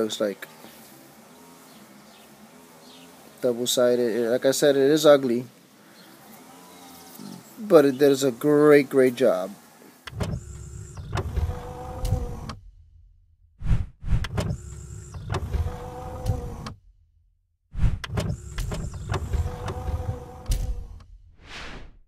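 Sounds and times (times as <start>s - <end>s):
small electric motor whirring: 6.1s - 7.6s, 9.9s - 12.7s, 14.1s - 16.8s, 18.0s - 21.2s
short whoosh: 13.6s - 14.3s, 17.7s - 18.1s, 21.2s - 22.0s.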